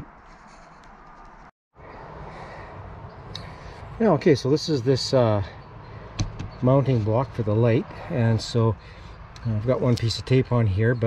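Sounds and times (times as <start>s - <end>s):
faint outdoor background noise: 0.0s - 11.0s.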